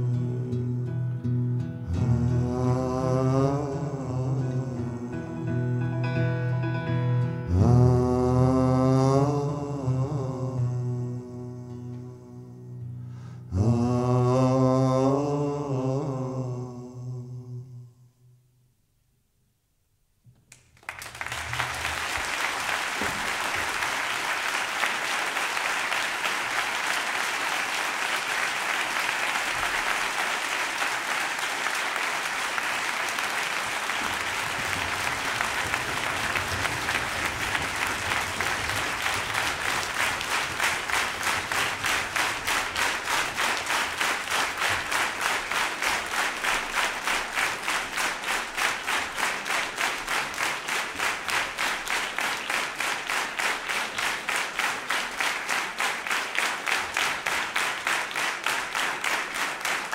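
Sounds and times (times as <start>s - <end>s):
concert audience applauding: 20.5s - 59.9s
crowd clapping in unison: 20.5s - 59.9s.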